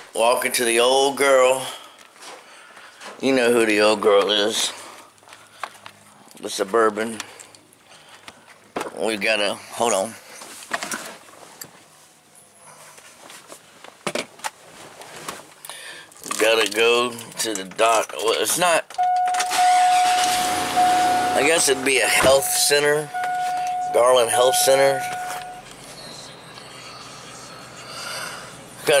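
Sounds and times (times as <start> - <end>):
rustling and handling noise: 7.2 - 19.6
faint car cabin noise: 17.8 - 29.0
electronic dashboard beep: 19.0 - 27.8.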